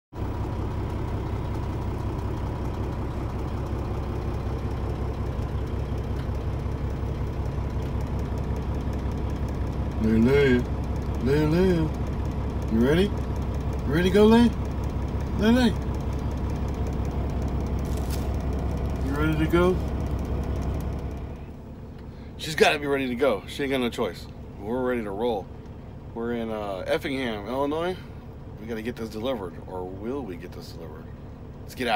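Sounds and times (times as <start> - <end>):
diesel truck engine idling: 0.1 - 31.9.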